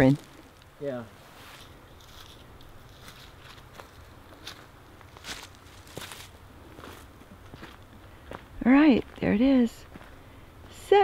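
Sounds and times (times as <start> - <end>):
footsteps crunching dry leaves: 0.0 - 0.6, 1.2 - 8.4.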